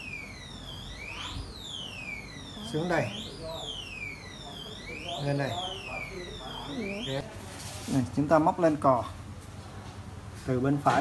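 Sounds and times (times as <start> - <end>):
siren-like alarm wailing: 0.0 - 7.2.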